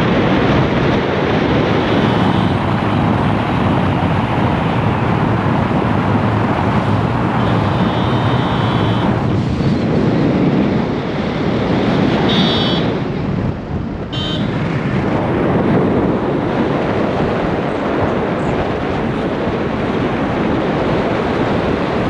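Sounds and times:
wind and road noise: 0.0 - 22.0.

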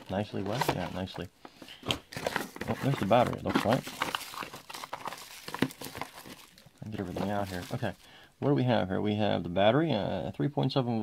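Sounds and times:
plastic packaging crinkling: 0.0 - 8.3.

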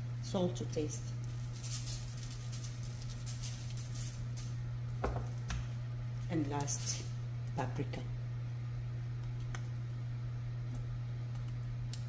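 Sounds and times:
low electrical hum: 0.0 - 12.0
salt shaker rustling: 1.2 - 4.5.

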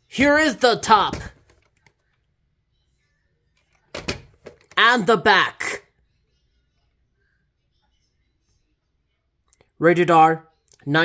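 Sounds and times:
person speaking: 0.1 - 1.5, 4.6 - 5.8.

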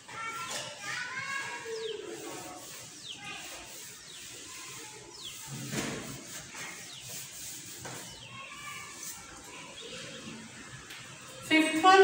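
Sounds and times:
children calling out: 0.0 - 5.3, 8.0 - 11.4
duster rubbing whiteboard: 1.2 - 9.4.

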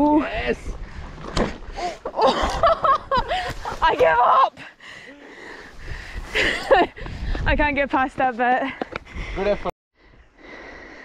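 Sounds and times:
woman laughing breathily: 6.2 - 7.1.

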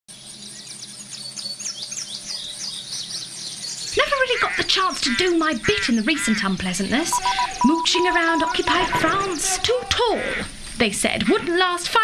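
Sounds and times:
birds chirping and trilling: 0.1 - 11.8.

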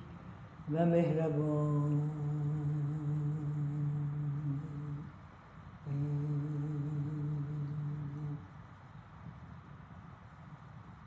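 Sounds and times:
man humming low note: 0.7 - 5.1, 5.9 - 8.5.

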